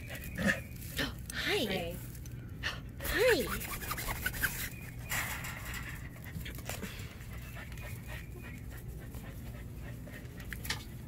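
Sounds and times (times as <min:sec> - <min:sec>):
animal panting: 0:05.9 - 0:11.0.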